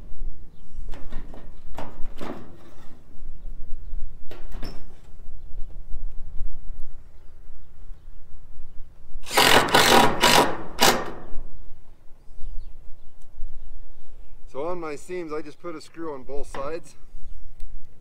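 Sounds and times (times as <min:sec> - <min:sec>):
power drill driving screws into metal: 0:09.2 - 0:11.3.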